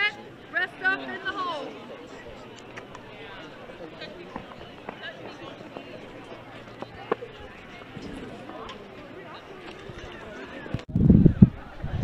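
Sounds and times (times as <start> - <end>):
murmur of spectators' voices: 0.0 - 12.0.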